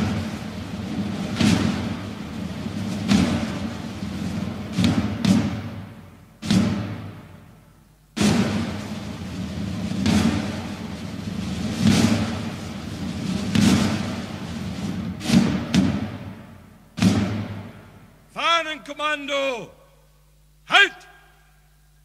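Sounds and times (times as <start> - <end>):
heavy echoing thuds: 0.0 - 18.3.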